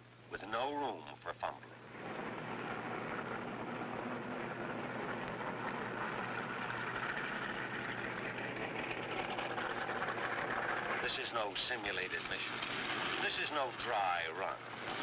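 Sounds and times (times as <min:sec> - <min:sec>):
steady mechanical engine noise: 0:00.0 - 0:15.0.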